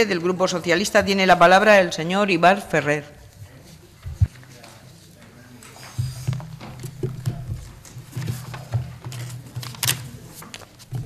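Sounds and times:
papers rustling: 0:03.8 - 0:11.0
microphone handling knocks: 0:06.0 - 0:09.9.

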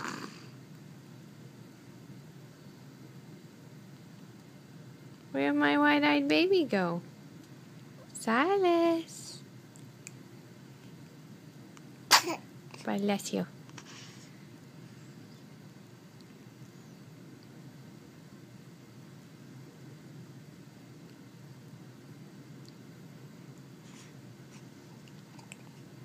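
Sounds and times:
low steady hum: 0:00.0 - 0:26.0
baby sneezing: 0:12.1 - 0:12.5.

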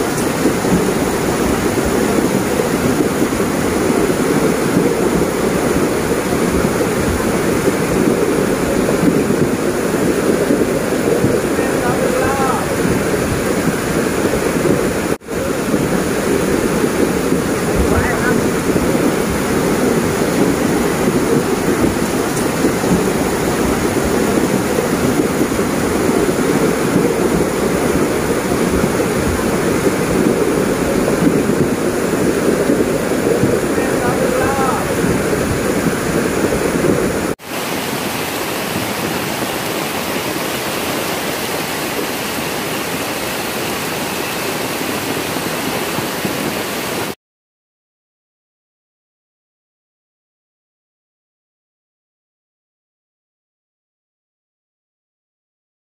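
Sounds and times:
floodwater rushing: 0:00.0 - 0:47.2.

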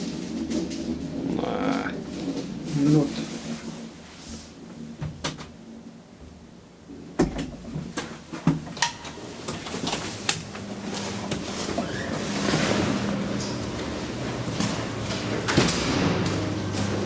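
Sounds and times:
elevator doors opening rush: 0:00.0 - 0:04.0, 0:06.9 - 0:17.0
elevator hum: 0:00.0 - 0:17.0.

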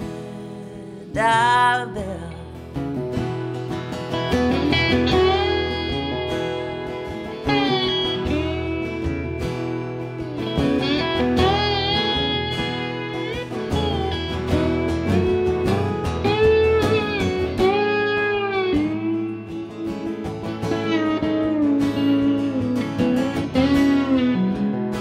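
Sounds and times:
electric slide guitar solo: 0:00.0 - 0:25.0
strummed acoustic guitar: 0:00.0 - 0:25.0.

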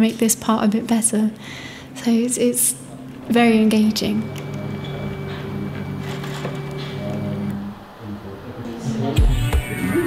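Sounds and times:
stepper motors whining: 0:03.0 - 0:10.0.

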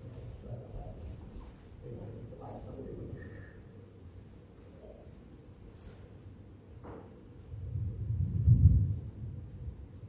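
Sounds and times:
deep low rumble: 0:07.5 - 0:10.0.

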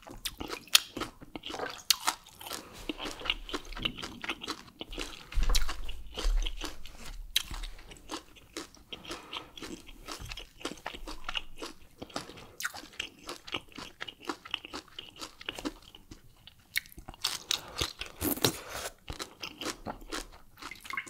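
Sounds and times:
person chewing food: 0:00.0 - 0:21.0.

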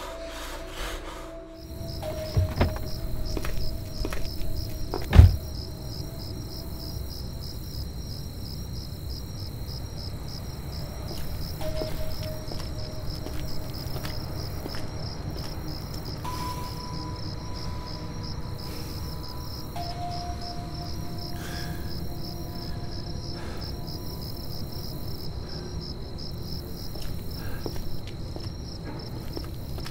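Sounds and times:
crickets chirping: 0:00.0 - 0:29.9
low dark music drone: 0:00.0 - 0:29.9.

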